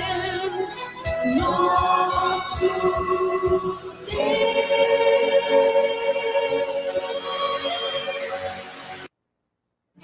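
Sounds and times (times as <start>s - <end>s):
gospel song with voices singing: 0.0s - 9.1s.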